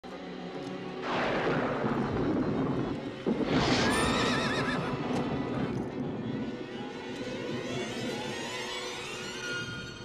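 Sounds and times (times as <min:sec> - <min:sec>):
horse whinnying: 0:03.6 - 0:05.0.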